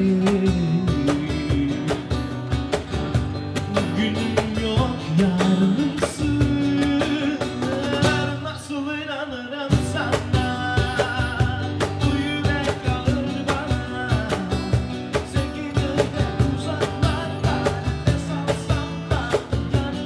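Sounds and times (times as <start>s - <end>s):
man singing: 0.0s - 2.8s, 3.6s - 20.0s
cajon hits: 0.0s - 8.4s, 9.8s - 20.0s
acoustic guitars: 0.0s - 20.0s.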